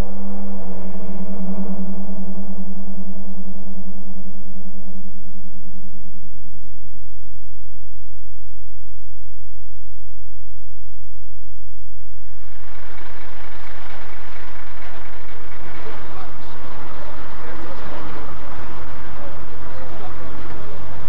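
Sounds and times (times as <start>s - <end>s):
low gong-like ringing tone: 0.0s - 6.5s
steady low hum: 0.0s - 21.0s.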